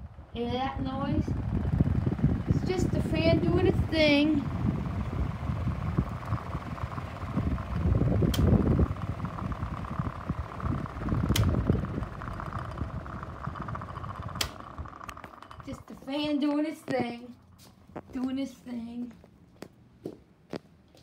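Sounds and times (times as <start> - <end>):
electric fan whirring: 0.0 - 21.0.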